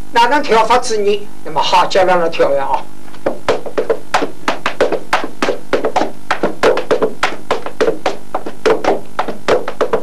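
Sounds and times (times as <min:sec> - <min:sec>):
tap-dancing on wooden floor: 0:03.2 - 0:10.0.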